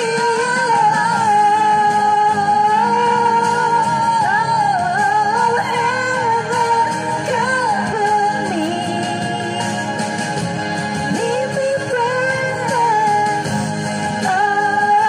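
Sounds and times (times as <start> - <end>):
backing music: 0.0 - 15.0.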